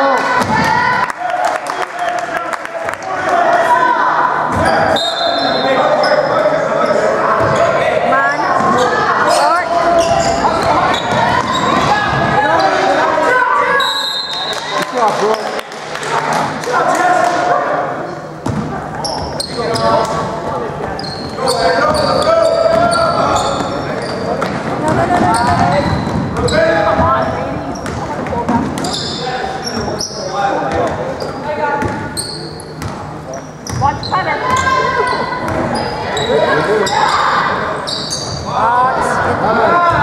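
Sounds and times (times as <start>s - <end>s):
voices calling out: 3.2s - 40.0s
basketball bouncing on court: 18.4s - 20.2s, 20.9s - 29.0s, 31.8s - 32.1s, 32.8s - 33.0s, 33.6s - 34.8s.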